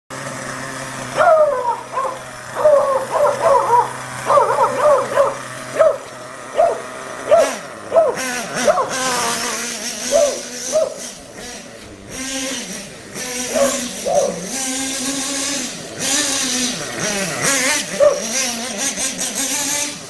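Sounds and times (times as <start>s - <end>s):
nitro engine running: 0.1s - 20.0s
dog barking: 1.2s - 6.0s, 6.6s - 9.0s, 10.1s - 11.0s, 13.5s - 14.4s, 18.0s - 18.3s.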